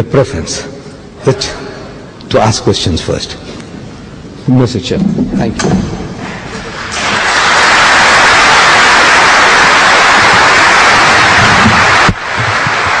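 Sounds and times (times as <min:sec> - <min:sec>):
audience applauding: 0:06.6 - 0:13.0.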